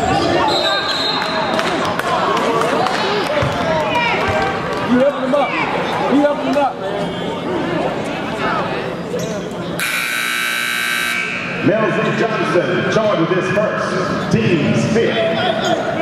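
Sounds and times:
voices in large hall: 0.0 - 16.0
scoreboard buzzer: 9.8 - 11.6.

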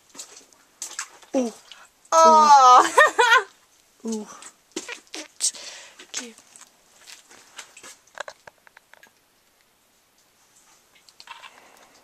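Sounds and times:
person exclaiming ooh: 2.1 - 3.1.

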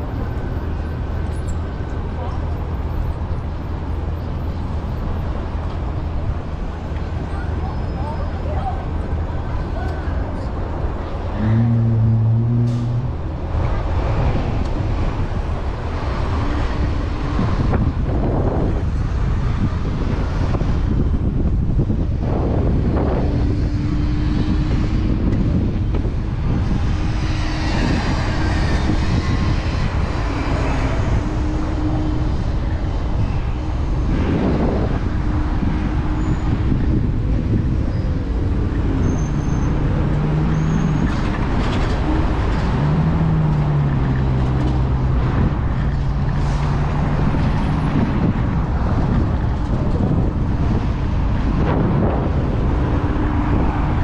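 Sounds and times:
city street traffic: 0.0 - 54.0
engines humming: 0.0 - 54.0
wind rumble on microphone: 0.0 - 54.0.

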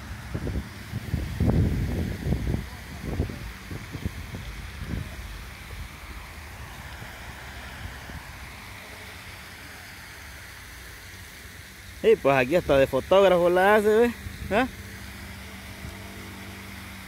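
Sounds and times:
wind rumble on microphone: 0.0 - 8.8, 14.2 - 14.8
fountain water splashing: 0.0 - 17.0.

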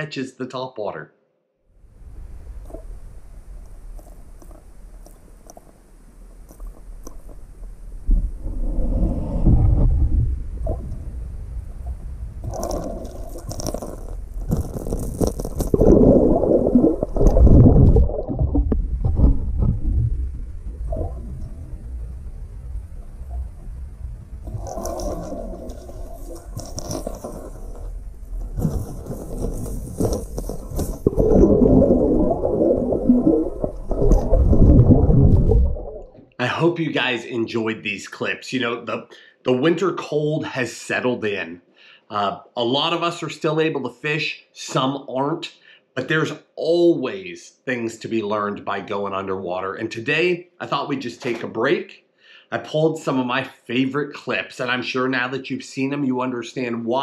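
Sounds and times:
churning water rumbling: 2.0 - 36.2.

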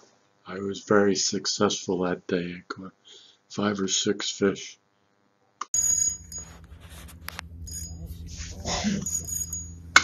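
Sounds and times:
steady low hum: 5.8 - 10.0
thin high ringing tones: 5.8 - 10.0
person speaking: 6.6 - 9.5.

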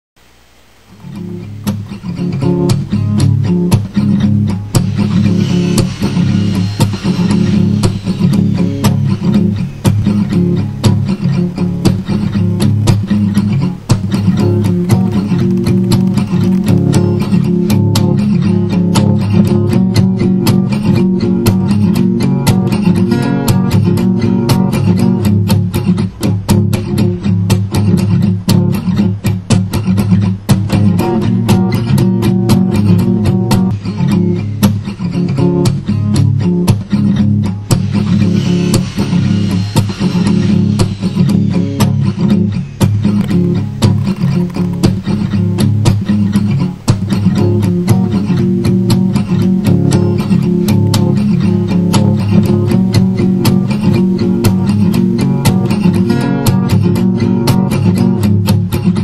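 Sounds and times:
guitar picked in fast runs: 1.0 - 59.0.

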